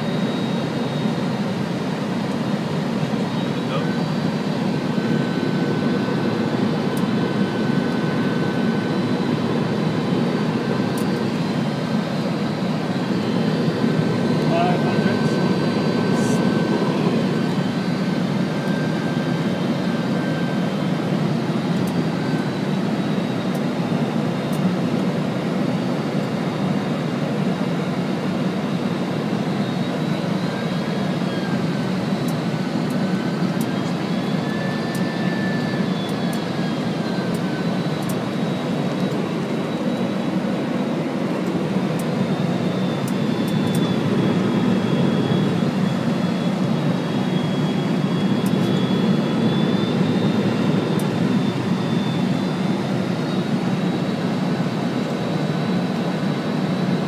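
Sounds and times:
airflow and engine rush: 0.0s - 57.0s
thin engine whines: 0.0s - 57.0s.

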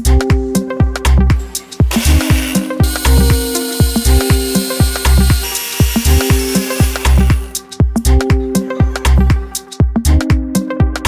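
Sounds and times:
background music with beat: 0.0s - 11.0s
blender motor running: 1.7s - 7.6s.

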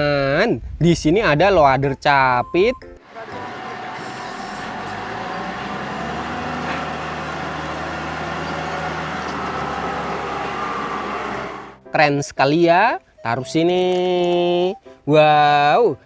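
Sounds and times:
diesel engine running: 3.0s - 11.8s.

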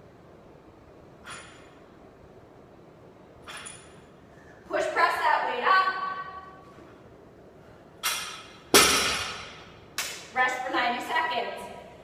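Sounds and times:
barbell impacts on floor: 8.0s - 9.8s.

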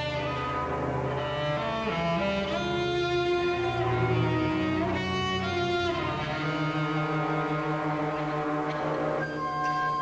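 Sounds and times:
orchestra holding sustained chords: 0.0s - 10.0s.

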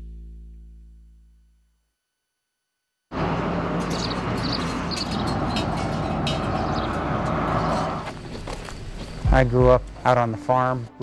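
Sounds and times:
loud rushing traffic: 3.1s - 10.2s.

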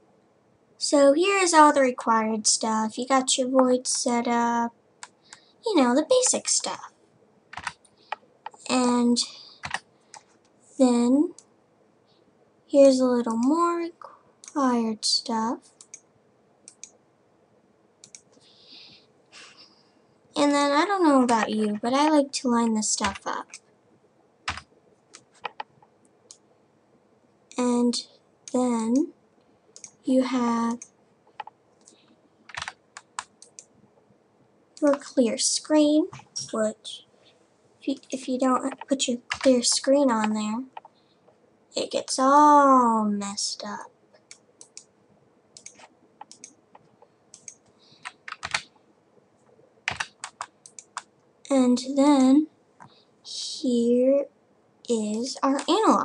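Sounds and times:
computer keyboard keystrokes: 7.5s - 8.6s, 9.6s - 10.3s, 24.5s - 25.7s, 30.8s - 33.7s, 45.6s - 48.7s, 49.9s - 51.1s.

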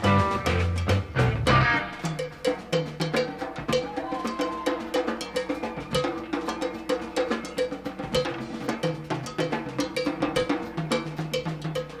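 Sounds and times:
low bass notes: 0.0s - 1.9s
rock drumming on drum kit: 0.0s - 12.0s.

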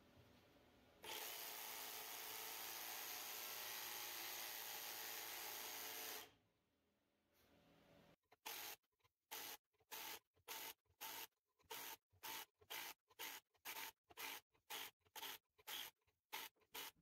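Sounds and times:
jigsaw cutting wood: 1.0s - 6.3s, 8.4s - 17.0s.

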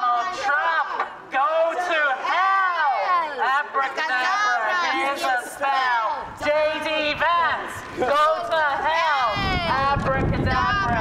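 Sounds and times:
wind rumble on microphone: 9.2s - 11.0s.

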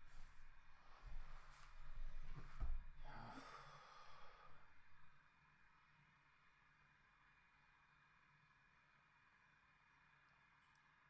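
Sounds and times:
faint breath or sigh: 3.0s - 4.7s.

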